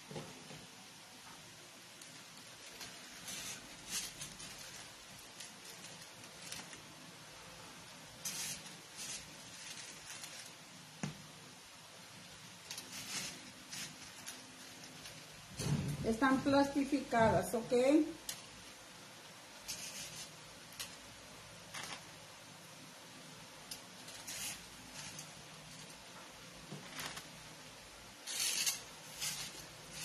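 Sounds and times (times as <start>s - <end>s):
rustling and scratching of foam flowers: 2.0s - 11.0s, 12.0s - 22.5s, 23.1s - 30.0s.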